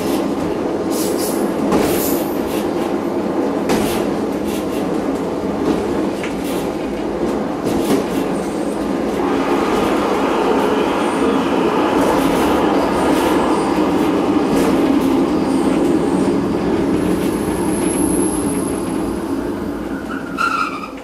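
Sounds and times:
train wheels rumbling on rail: 0.0 - 21.0.

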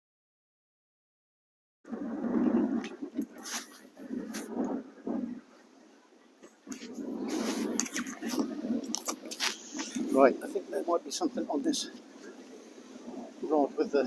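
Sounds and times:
wind buffeting microphone: 1.9 - 14.0.

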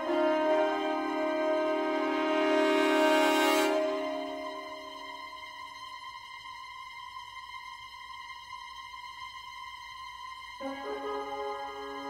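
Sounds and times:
high sustained note: 0.0 - 5.5
low sustained chord: 0.0 - 5.5.

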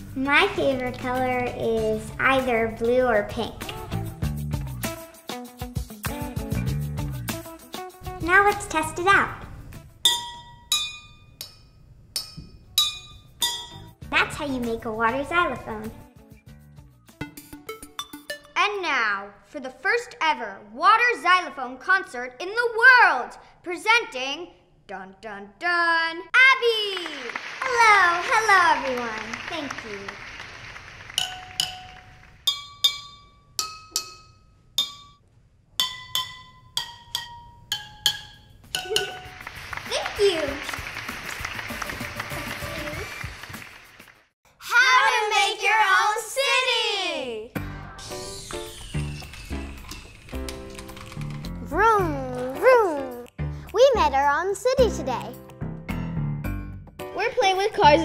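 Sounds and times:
spoon clinking water glasses: 10.0 - 13.9, 31.2 - 35.2, 35.8 - 39.4.

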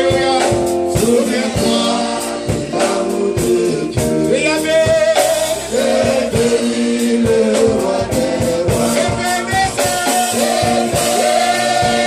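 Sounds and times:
band playing: 0.0 - 12.0
men singing into microphones: 0.0 - 12.0
steady drum beat: 0.0 - 12.0.

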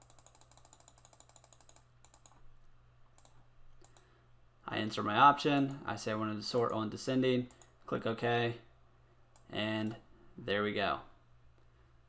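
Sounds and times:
computer mouse clicking: 0.0 - 4.1, 7.5 - 7.8.

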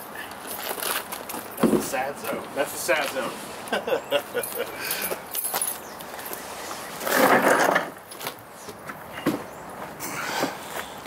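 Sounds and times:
loud rustling scrape: 6.4 - 8.0.

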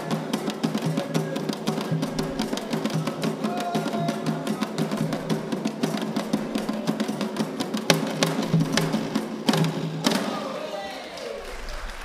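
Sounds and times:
hand drums playing fast rhythm: 0.0 - 10.5.

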